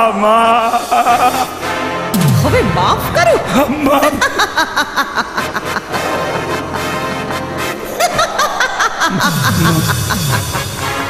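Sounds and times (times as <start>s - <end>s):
woman laughing loudly: 3.2s - 11.0s.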